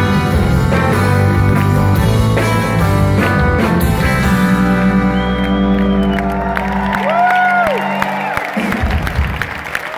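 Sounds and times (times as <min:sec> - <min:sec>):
audience cheering and whooping: 0:04.8 - 0:09.9.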